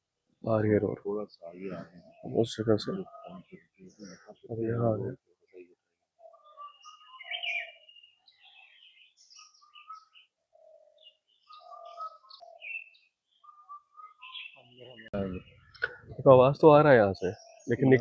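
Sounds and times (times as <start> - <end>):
birds chirping and whistling: 1.3 - 4.9, 6.1 - 18.0.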